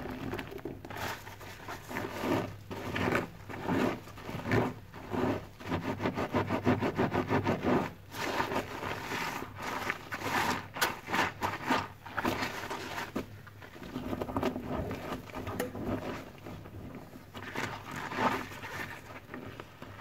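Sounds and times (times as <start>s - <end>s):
sponges squelching in soapy water: 0.0s - 20.0s.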